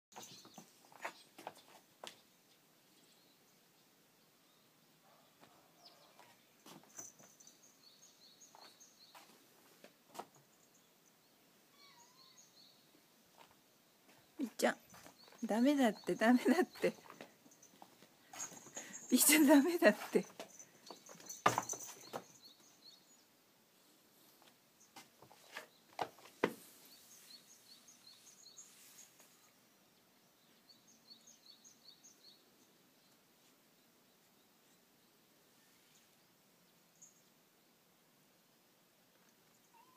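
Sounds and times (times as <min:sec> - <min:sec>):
small birds chirping: 0:00.1 - 0:38.0, 0:39.0 - 0:39.9
faint high bird chirps: 0:11.7 - 0:13.0, 0:39.4 - 0:39.9
soft rustles and thumps: 0:20.3 - 0:22.5, 0:24.4 - 0:27.3.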